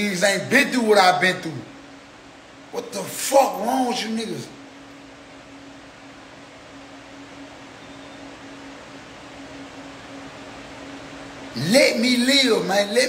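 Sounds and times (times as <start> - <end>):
constant low hum: 0.0 - 13.0.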